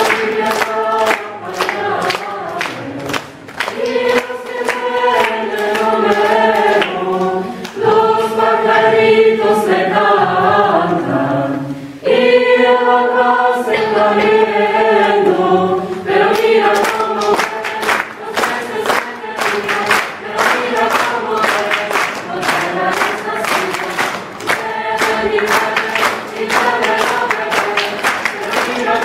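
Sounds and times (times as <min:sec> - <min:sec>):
rhythmic handclaps: 0:00.0 - 0:09.4, 0:13.8 - 0:15.4, 0:16.0 - 0:29.0
choir singing: 0:00.0 - 0:29.0.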